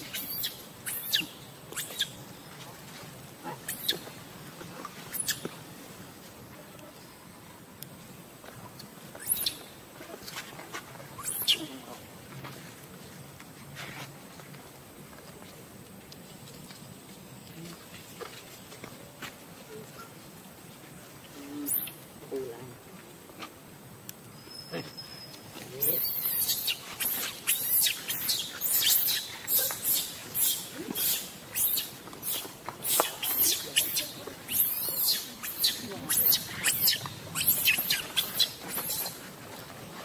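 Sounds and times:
macaque squealing call: 0:00.0 - 0:02.2, 0:03.6 - 0:04.1, 0:11.2 - 0:11.7, 0:25.8 - 0:39.2.

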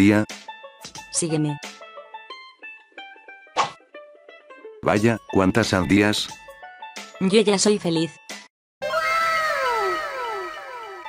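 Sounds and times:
downward sliding cartoon tones: 0:08.8 - 0:11.0.

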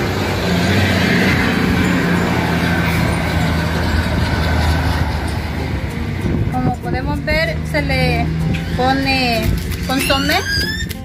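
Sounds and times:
heavy vehicle engine droning: 0:00.0 - 0:09.3.

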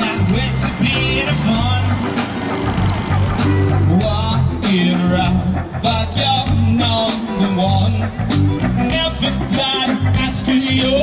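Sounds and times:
live band playing: 0:00.0 - 0:11.0
steady low notes: 0:00.0 - 0:11.0.

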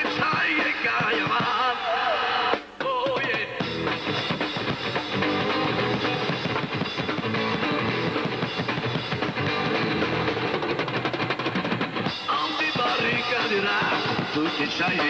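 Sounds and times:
drum kit: 0:00.0 - 0:15.0
electric guitar: 0:03.6 - 0:15.0.

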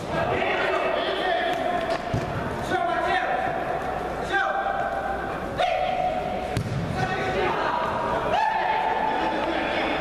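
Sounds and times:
players shouting echoing calls: 0:02.6 - 0:10.0.

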